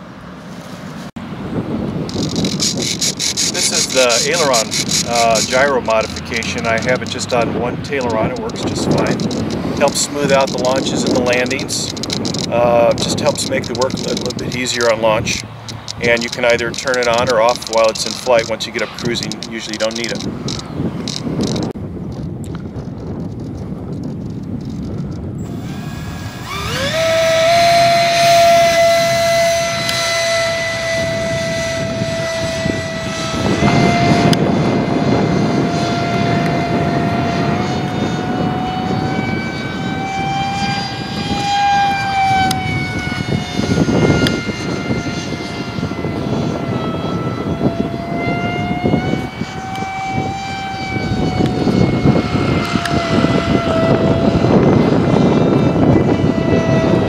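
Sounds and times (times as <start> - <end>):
wind noise on microphone: 0.0 - 57.0
electric ducted fan whine: 0.6 - 57.0.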